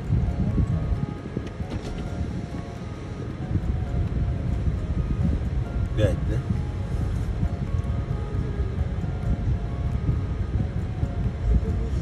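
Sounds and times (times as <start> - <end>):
faint steady tones: 0.0 - 12.0
wind buffeting microphone: 0.0 - 12.0.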